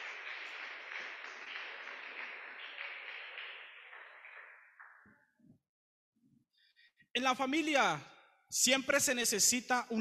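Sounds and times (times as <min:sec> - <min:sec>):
congregation applauding: 0:00.0 - 0:05.2.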